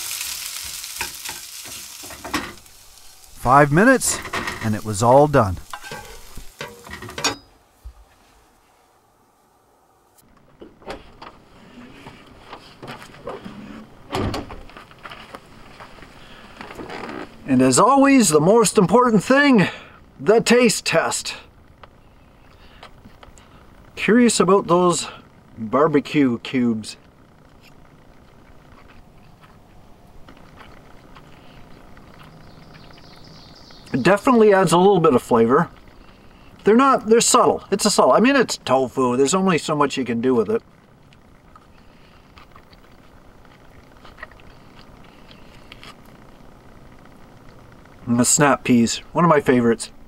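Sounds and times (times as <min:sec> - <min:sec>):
footsteps: 0:03.7 - 0:08.6, 0:10.2 - 0:17.3, 0:27.0 - 0:33.1
trailer door clunking: 0:10.4 - 0:14.8
faint chewing: 0:27.6 - 0:33.3, 0:41.0 - 0:46.4.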